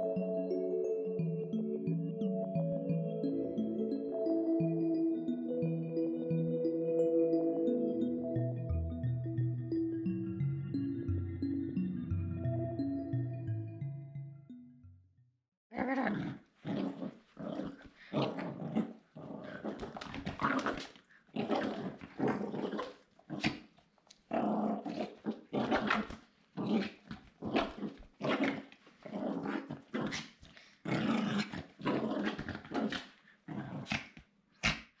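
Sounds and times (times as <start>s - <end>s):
small dog play-growling: 15.8s - 23.7s, 24.3s - 34.9s.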